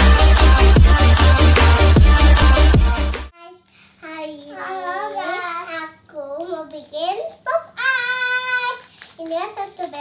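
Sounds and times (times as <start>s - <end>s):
young child singing: 3.3s - 10.0s.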